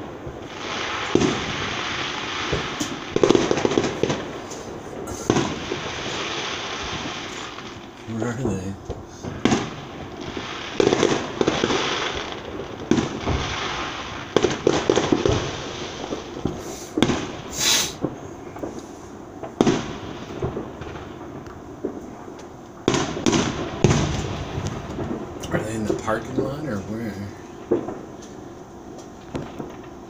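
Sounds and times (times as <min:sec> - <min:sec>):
rocket hiss: 0:00.0 - 0:22.1
fireworks bangs: 0:00.0 - 0:30.0
fireworks crackling: 0:00.0 - 0:30.0.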